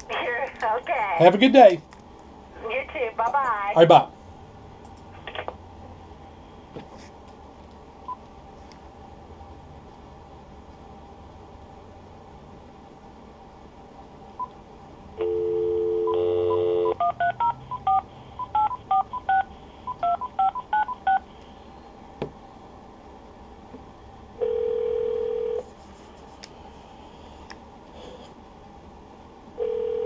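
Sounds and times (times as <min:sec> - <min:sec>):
dial tone: 0:15.2 - 0:19.4, 0:24.4 - 0:25.6, 0:29.6 - 0:30.0
touch-tone dialing digits: 0:15.2 - 0:21.2.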